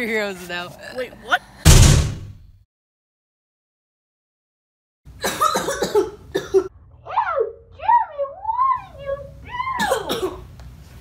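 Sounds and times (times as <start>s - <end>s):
boy coughing harshly: 5.2s - 6.7s, 9.7s - 10.5s
boy moaning: 7.0s - 10.1s.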